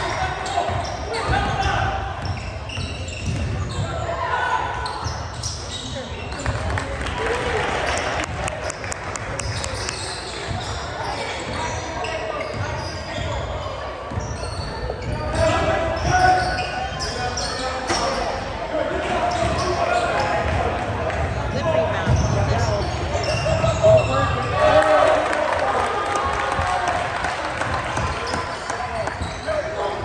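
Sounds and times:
spectators chattering and calling: 0.0 - 30.0.

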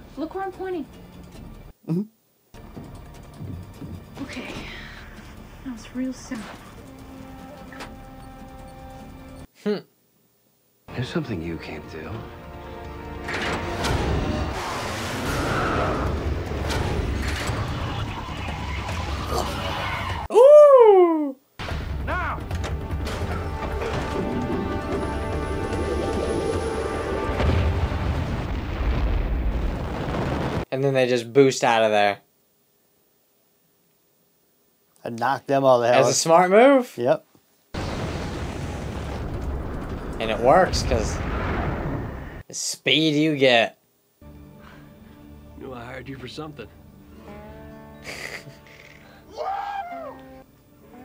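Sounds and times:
dramatic music sustained notes: 2.6 - 9.5, 11.2 - 15.2, 21.7 - 28.3.

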